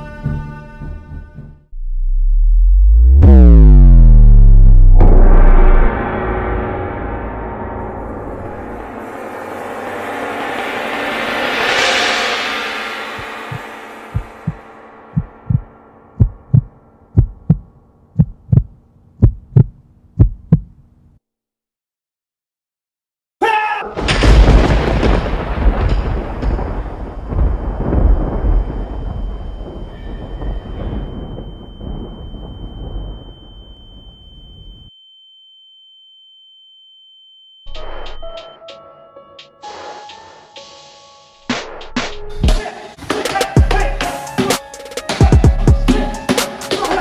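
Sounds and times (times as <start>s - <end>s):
low rumble: 1.7s - 20.8s
high-pitched electronic tone: 1.8s - 5.9s
heartbeat thumps: 14.2s - 14.6s, 15.2s - 20.8s
loud electronic music: 43.2s - 47.0s.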